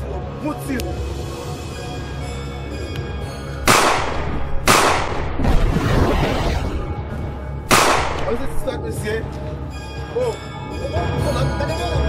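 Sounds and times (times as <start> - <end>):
background music: 0.0 - 12.0
gunshots with echoing tail: 3.7 - 6.3, 7.7 - 8.7.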